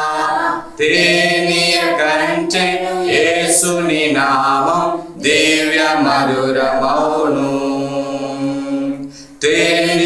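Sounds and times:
group singing worship song: 0.0 - 10.0
breath: 9.1 - 9.4.

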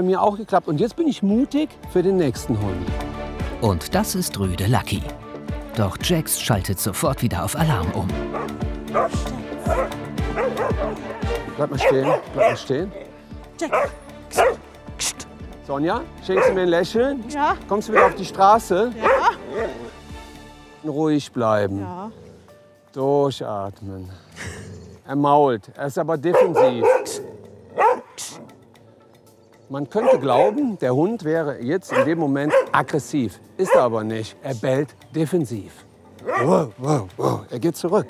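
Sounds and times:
background music with steady beat: 0.0 - 24.8, 25.5 - 38.0
dog barking: 8.3 - 12.8, 13.6 - 14.7, 16.3 - 16.7, 17.9 - 18.3, 19.0 - 19.7, 26.3 - 28.3, 29.9 - 30.7, 31.9 - 33.0, 33.6 - 34.0, 36.2 - 36.6
dog grumbling and huffing: 8.3 - 13.0, 24.4 - 25.1, 26.4 - 28.5, 36.2 - 37.5.

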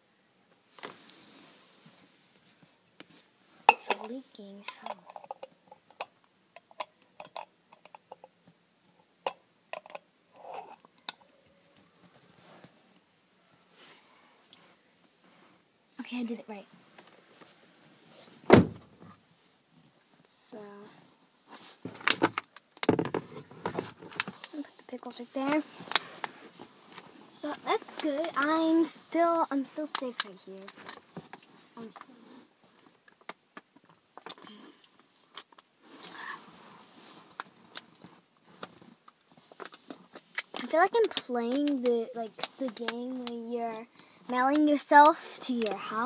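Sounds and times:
jar knocking and scraping: 3.7 - 8.4.

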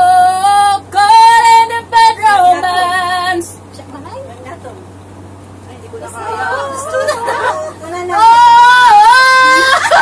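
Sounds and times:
woman singing unaccompanied: 0.0 - 3.6, 6.1 - 10.0.

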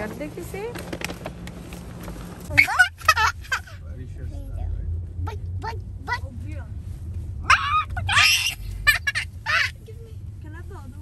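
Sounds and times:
girls squealing excitedly: 7.5 - 9.8.

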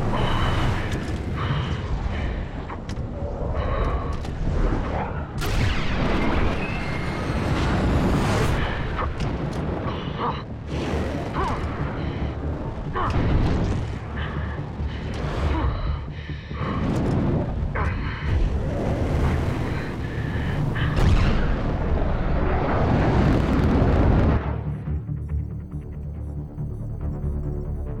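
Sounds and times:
deep rumble: 0.0 - 25.8
music: 0.0 - 28.0.

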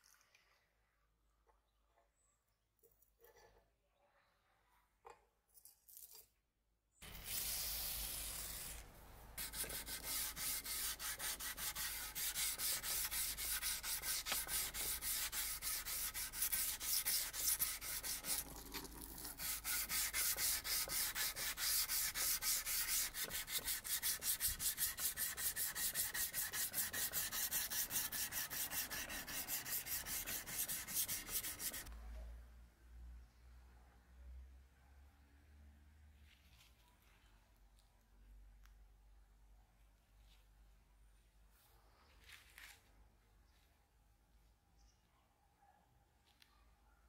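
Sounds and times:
sandpaper rubbing on steel blade: 7.0 - 8.8, 9.4 - 31.9.

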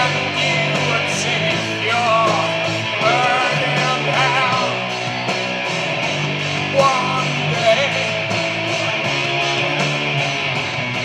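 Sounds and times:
drums: 0.0 - 11.0
electric guitars strummed: 0.0 - 11.0.

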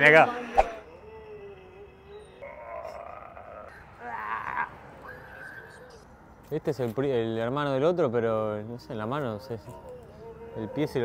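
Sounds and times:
spooky low moan: 0.3 - 6.1.

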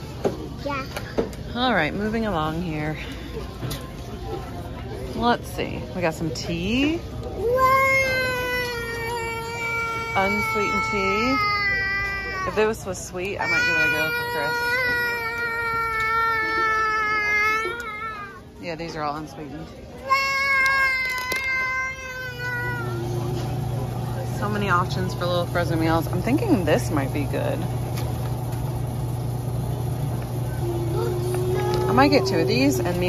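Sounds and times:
young child whining: 7.4 - 12.6, 13.4 - 18.5, 20.1 - 23.3, 30.6 - 33.0
child squealing: 13.5 - 18.4.

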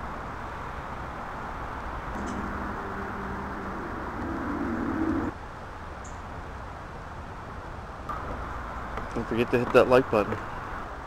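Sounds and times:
quiet outdoor background: 0.0 - 11.0
bird calling in low notes: 2.2 - 5.3.

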